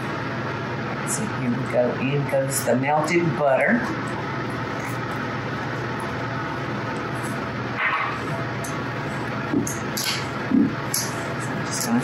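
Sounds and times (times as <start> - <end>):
steady fan noise: 0.0 - 12.0.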